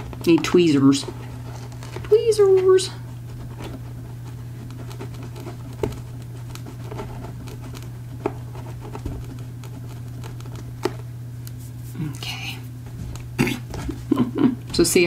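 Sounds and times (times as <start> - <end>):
steady low hum: 0.0 - 15.0
cloth scratching on board: 2.6 - 10.9.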